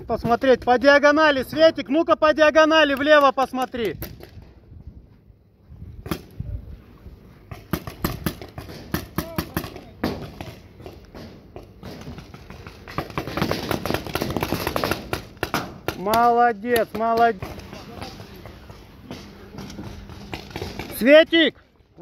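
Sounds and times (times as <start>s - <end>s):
paintball markers firing: 7.5s - 21.2s.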